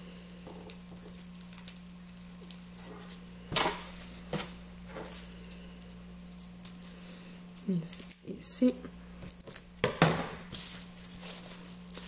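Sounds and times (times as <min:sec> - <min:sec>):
plastic rustling: 0:00.0 - 0:08.2, 0:10.5 - 0:12.0
steady low hum: 0:00.0 - 0:12.0.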